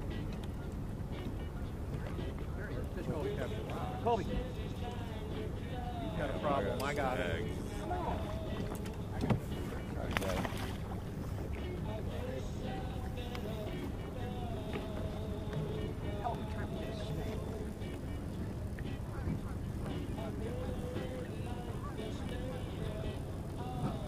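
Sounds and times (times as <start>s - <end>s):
boat low rumble: 0.0s - 24.0s
faint radio playing: 11.6s - 24.0s.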